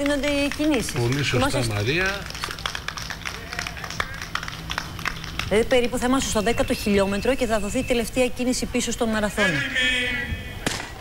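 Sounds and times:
sharp taps and claps: 0.0s - 6.0s.

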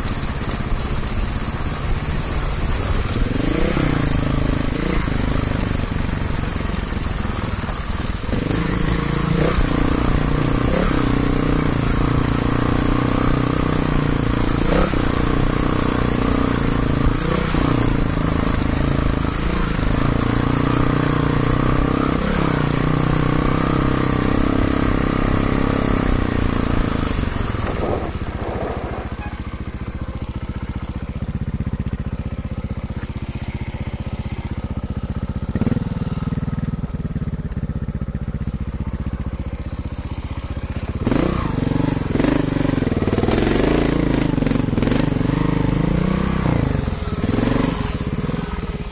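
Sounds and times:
motorcycle engine revving: 0.0s - 48.9s.

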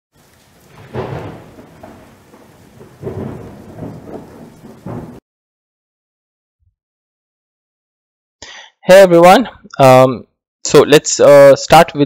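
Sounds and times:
steady hiss: 0.2s - 5.2s
thunder-like rumbling: 0.2s - 5.2s.

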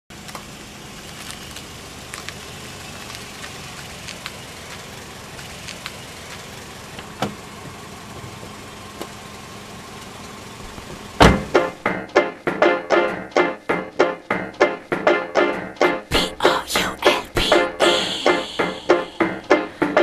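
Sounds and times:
car door thump: 7.0s - 7.4s, 10.6s - 12.0s
electro-swing music: 11.5s - 20.0s.

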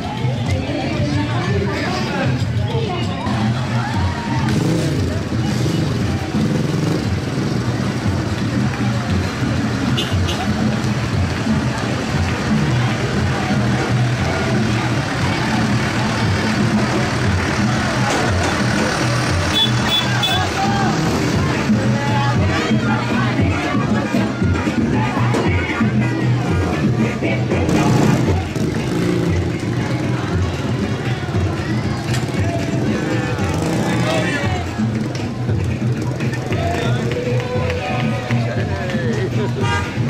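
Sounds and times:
music: 0.0s - 40.0s
street crowd voices: 0.0s - 40.0s.

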